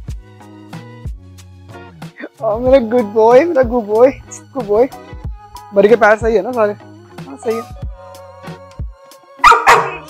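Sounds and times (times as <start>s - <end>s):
puppy barking: 9.4s - 10.0s.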